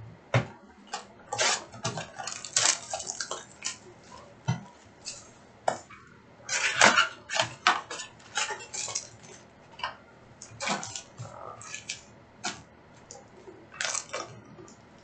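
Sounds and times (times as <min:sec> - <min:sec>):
card packs crinkling and rustling: 0:01.3 - 0:05.2, 0:10.5 - 0:15.0.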